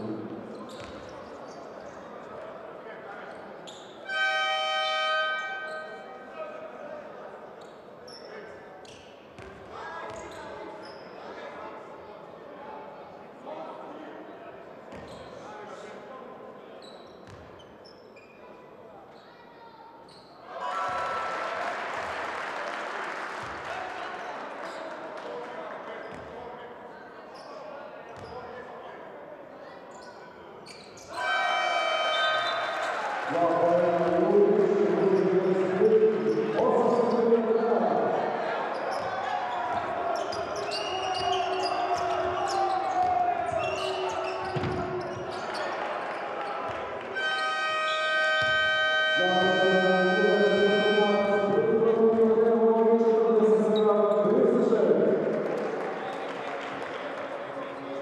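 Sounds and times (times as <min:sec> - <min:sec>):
arena crowd noise: 0:00.0 - 0:58.0
horn-like tone: 0:04.1 - 0:05.9, 0:47.2 - 0:51.8
crowd cheering loudly: 0:20.5 - 0:25.1, 0:31.1 - 0:33.5.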